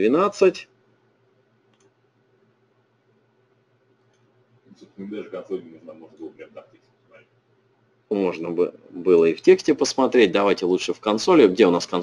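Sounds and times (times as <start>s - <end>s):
faint room hum: 0.0s - 12.0s
faint click: 1.7s - 2.0s, 4.0s - 4.3s.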